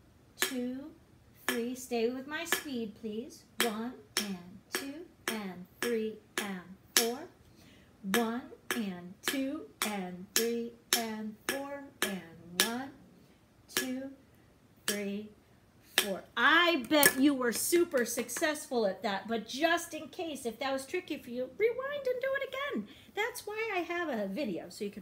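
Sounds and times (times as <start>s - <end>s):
woman chanting counts: 0.4s - 7.4s, 8.0s - 13.1s, 13.7s - 14.2s, 14.8s - 25.0s
person talking: 8.0s - 13.0s, 16.0s - 25.0s
sharp percussive taps: 13.7s - 14.0s.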